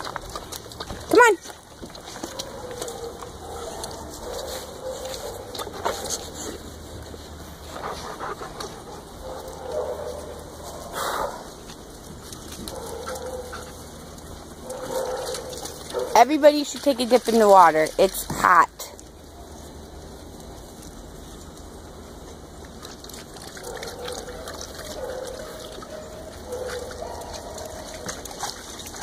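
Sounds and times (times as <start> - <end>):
dogs playing: 0.0 - 29.0.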